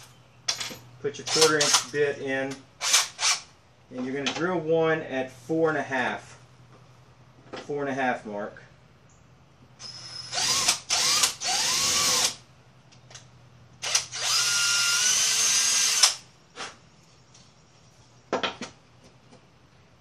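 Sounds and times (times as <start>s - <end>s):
cordless drill boring through wood: 9.8s - 12.4s, 13.8s - 16.2s.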